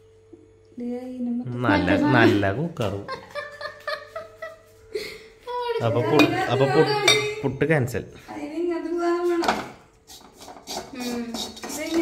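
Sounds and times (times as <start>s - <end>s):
spatula scraping metal pan: 10.1s - 12.0s.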